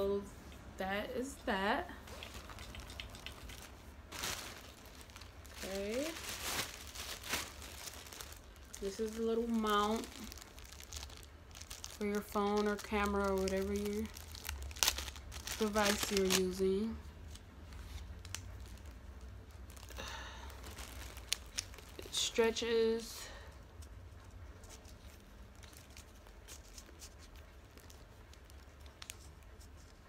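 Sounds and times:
plastic handling rustling: 2.0s - 22.4s
plastic bag crinkling: 2.0s - 23.1s, 24.6s - 29.9s.

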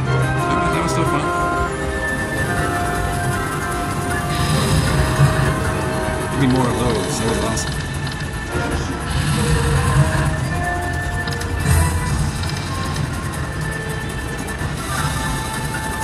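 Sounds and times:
slot machine bonus music: 0.0s - 16.0s
slot machine chimes: 0.0s - 16.0s
low rumble: 2.1s - 14.4s.

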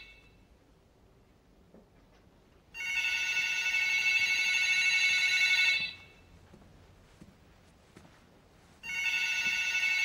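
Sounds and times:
cordless phone ringing: 2.8s - 6.1s, 8.8s - 10.0s.

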